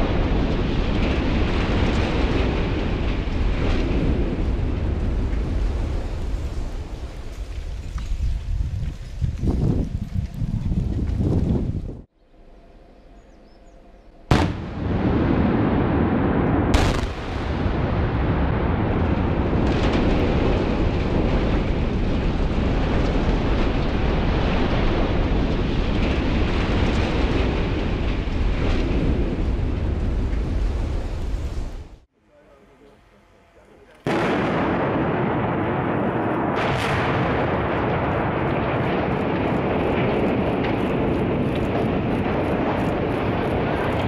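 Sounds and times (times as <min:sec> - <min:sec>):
explosive charge blasts: 0:00.0 - 0:07.4, 0:14.3 - 0:32.0, 0:34.1 - 0:44.0
rumble of structure collapsing: 0:00.0 - 0:12.1, 0:14.3 - 0:32.1, 0:34.1 - 0:44.0.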